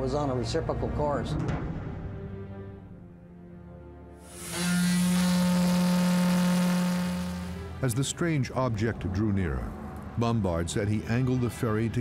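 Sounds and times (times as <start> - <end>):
ship horn blast: 4.2 - 7.9.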